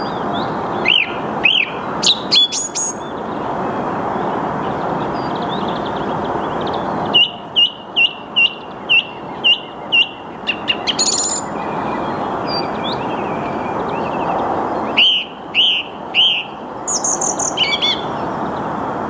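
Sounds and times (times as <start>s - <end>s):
song thrush singing: 0.0s - 18.7s.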